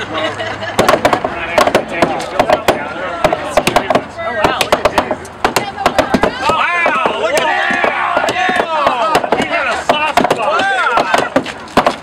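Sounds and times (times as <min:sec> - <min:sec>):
people talking and laughing: 0:00.0 - 0:11.8
sledgehammers striking concrete wall: 0:00.8 - 0:12.0.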